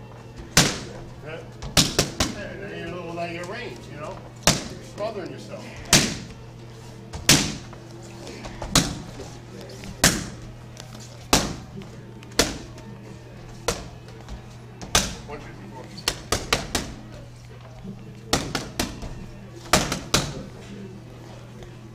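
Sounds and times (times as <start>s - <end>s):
boxing gloves smacking mitts: 0.4s - 1.0s, 1.6s - 2.5s, 4.4s - 5.1s, 5.8s - 6.4s, 7.1s - 7.8s, 8.4s - 9.2s, 9.8s - 12.9s, 13.6s - 15.3s, 16.0s - 17.0s, 18.3s - 20.5s.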